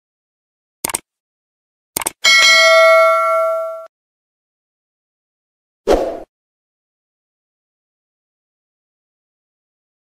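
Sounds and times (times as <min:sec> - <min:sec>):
notification bell ringing: 0:02.2 - 0:03.9.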